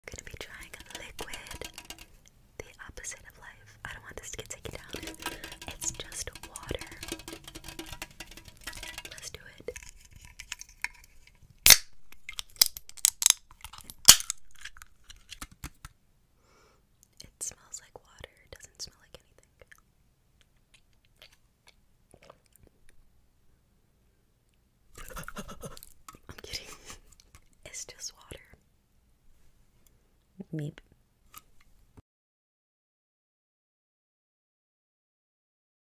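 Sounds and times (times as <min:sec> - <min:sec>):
person whispering: 0:00.0 - 0:02.0, 0:02.6 - 0:09.8, 0:17.2 - 0:19.7, 0:26.3 - 0:26.8, 0:27.7 - 0:28.6
fingernails tapping on a can: 0:00.1 - 0:02.1, 0:04.5 - 0:11.0.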